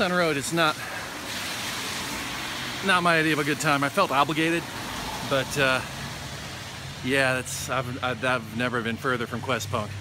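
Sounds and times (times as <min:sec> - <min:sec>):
rain falling on wet street: 0:00.0 - 0:10.0.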